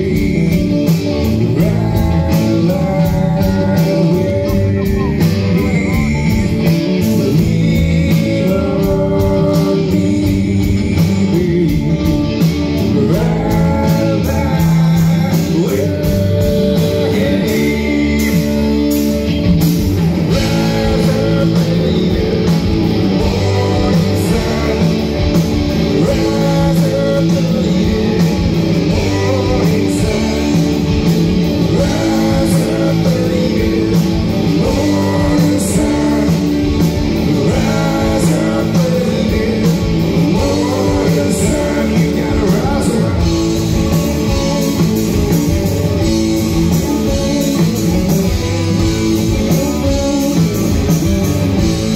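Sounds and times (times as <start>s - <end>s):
rock band playing: 0.0s - 51.9s.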